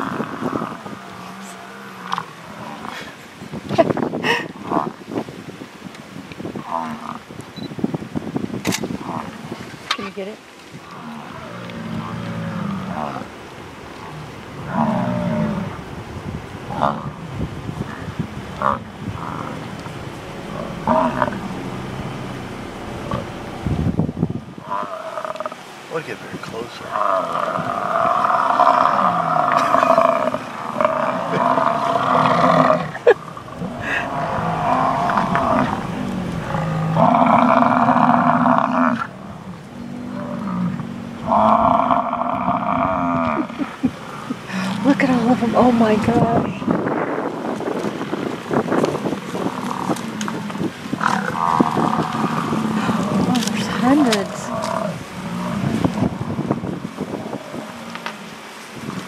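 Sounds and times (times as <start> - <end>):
bison bellowing: 10.9 - 13.4, 16.6 - 25.7, 26.8 - 46.6, 49.2 - 59.0.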